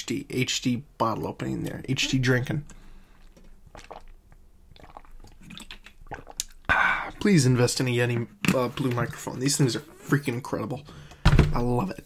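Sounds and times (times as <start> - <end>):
person gulping water: 1.4 - 7.2.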